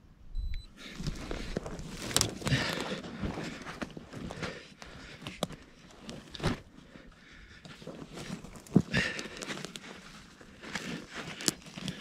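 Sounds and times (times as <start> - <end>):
rustling of clothing and twigs: 0.7 - 12.0.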